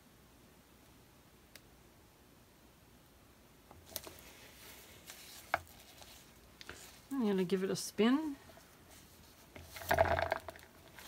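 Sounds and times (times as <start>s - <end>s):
gloved hands handling canvas: 3.7s - 11.0s.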